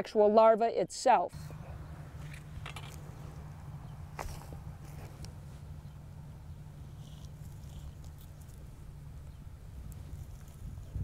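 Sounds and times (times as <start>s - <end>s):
low steady rumble: 1.3s - 11.0s
trowel scraping dry soil: 6.9s - 8.8s.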